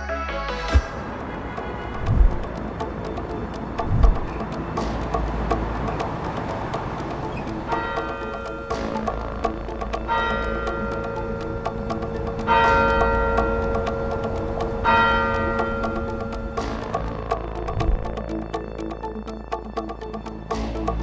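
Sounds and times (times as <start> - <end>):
music with low drone: 0.0 - 21.0
fast ticking beat: 1.0 - 21.0
deep bell tolling: 10.0 - 17.1.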